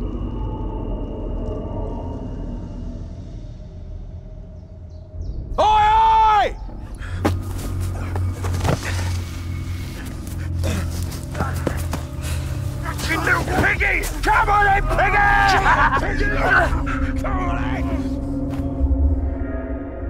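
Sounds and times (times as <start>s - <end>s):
low droning score: 0.0s - 5.6s, 6.5s - 20.0s
young men shouting and grunting: 5.6s - 8.6s, 10.0s - 18.2s
loud vocal cry: 12.9s - 18.2s.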